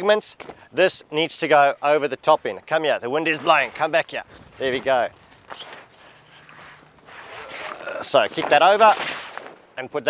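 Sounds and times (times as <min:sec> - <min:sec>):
heavy canvas rustling: 0:03.2 - 0:09.8.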